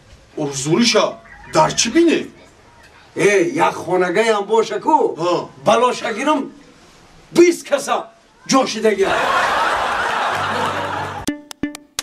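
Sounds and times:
person speaking: 0:00.6 - 0:02.5
crowd laughing: 0:09.0 - 0:11.3.

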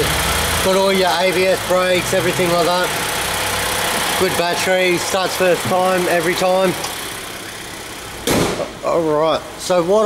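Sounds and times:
car engine idling: 0:00.0 - 0:10.0
car bonnet slamming shut: 0:08.2 - 0:08.8.

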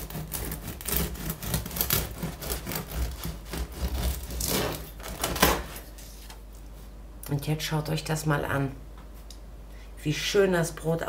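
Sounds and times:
knife sawing through bread crust: 0:00.0 - 0:05.3.

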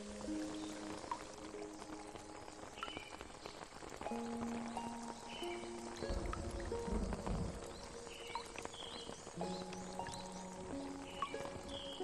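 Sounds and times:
rain: 0:00.0 - 0:12.0
slow ambient music: 0:00.0 - 0:12.0.

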